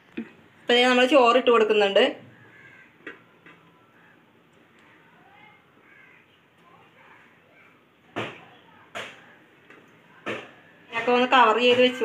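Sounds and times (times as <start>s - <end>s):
crow cawing: 2.2s - 4.2s, 5.8s - 6.4s.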